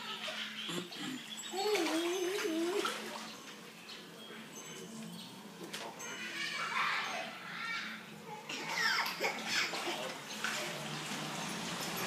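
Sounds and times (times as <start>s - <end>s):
high wavering humming voice: 0.5s - 3.3s
shallow water splashing: 1.5s - 3.7s, 8.6s - 12.0s.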